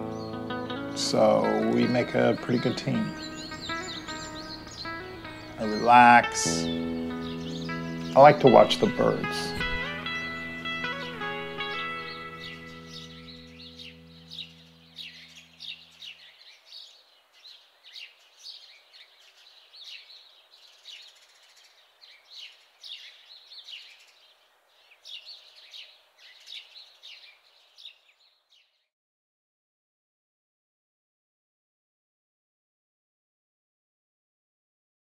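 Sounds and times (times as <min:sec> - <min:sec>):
guitar chord ringing: 0:00.0 - 0:15.9
faint outdoor hiss: 0:00.0 - 0:28.9
small birds chirping: 0:00.0 - 0:28.9.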